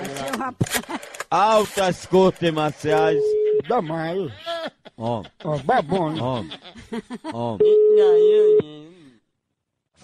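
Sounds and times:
telephone ringback tone: 7.6 - 8.6.

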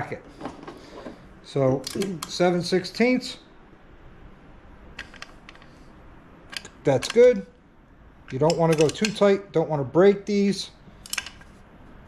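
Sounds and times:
hand tool metal clicks: 1.8 - 2.4, 6.5 - 7.5, 8.3 - 9.3.

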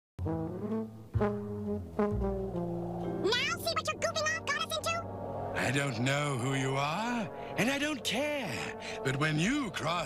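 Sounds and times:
brass chords: 0.2 - 10.0.

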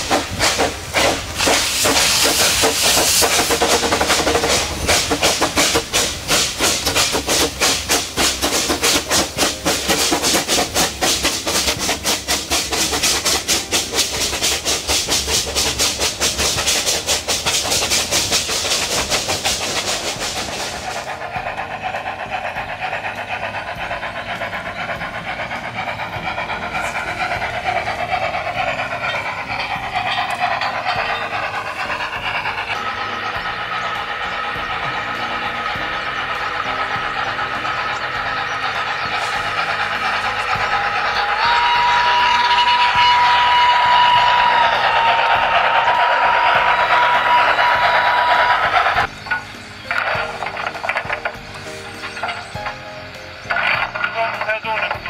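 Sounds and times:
steam hissing from drain cocks: 0.0 - 55.0
steam locomotive exhaust chuffs: 0.0 - 55.0
train coaches rolling on rails: 0.0 - 55.0.

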